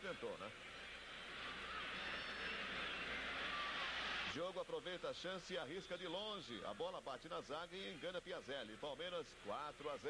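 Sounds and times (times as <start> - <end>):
stadium crowd cheering: 0.6 - 4.4.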